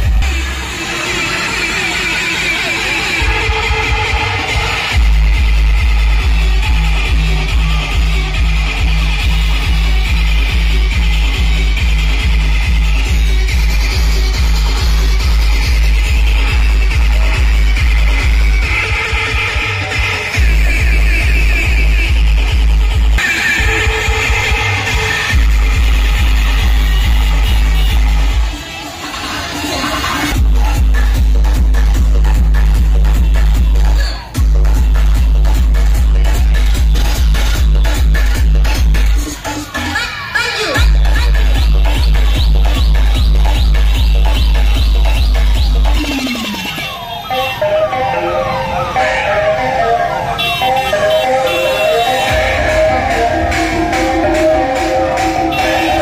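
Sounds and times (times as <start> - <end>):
electronic dance music: 0.0 - 56.0.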